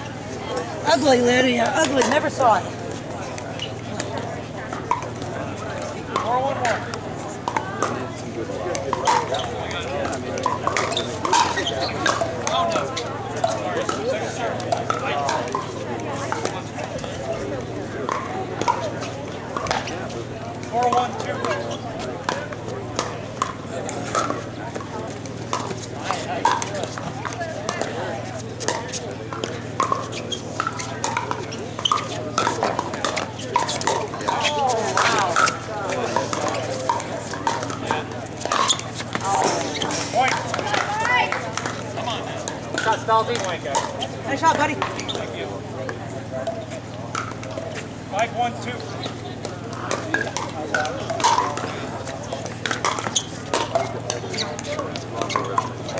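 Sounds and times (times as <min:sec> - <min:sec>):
people chattering: 0:00.0 - 0:55.9
paddles striking pickleball: 0:00.9 - 0:55.9.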